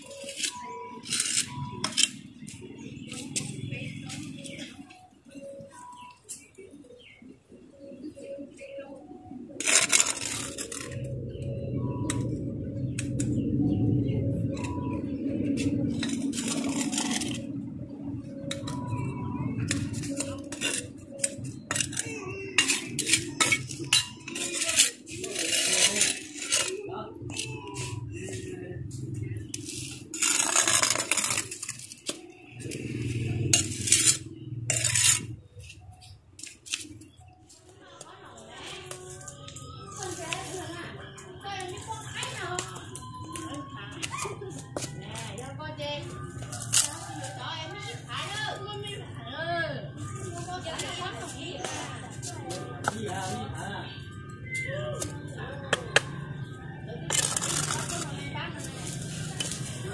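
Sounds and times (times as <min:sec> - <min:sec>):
trowel scraping: 0:00.0 - 0:03.6, 0:09.5 - 0:12.3, 0:15.5 - 0:17.6, 0:18.4 - 0:28.4, 0:29.5 - 0:35.8, 0:57.1 - 0:59.9.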